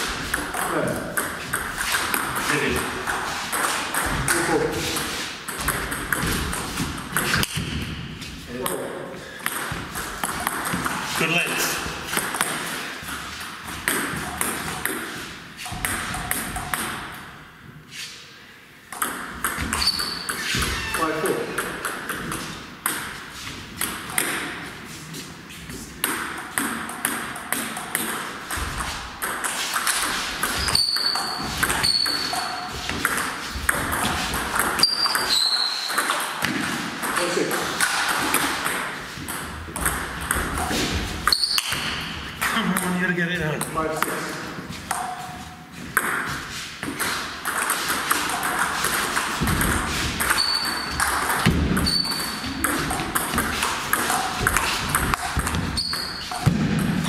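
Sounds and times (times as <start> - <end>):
ping pong ball bouncing on table: 0.3 - 7.8, 9.4 - 11.0, 15.7 - 17.0, 18.9 - 20.8, 21.4 - 23.1, 26.0 - 42.0, 46.0 - 57.0
ping pong ball clicking off bats: 0.3 - 7.8, 9.4 - 11.0, 12.1 - 15.1, 15.7 - 17.2, 18.9 - 20.8, 21.4 - 23.2, 23.8 - 24.6, 26.0 - 43.0, 44.9 - 45.2, 46.0 - 57.0.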